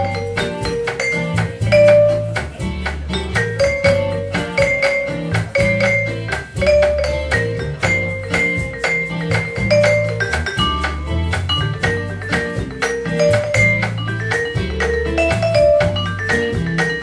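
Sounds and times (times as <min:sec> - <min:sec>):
live band instrumental music: 0:00.0 - 0:17.0.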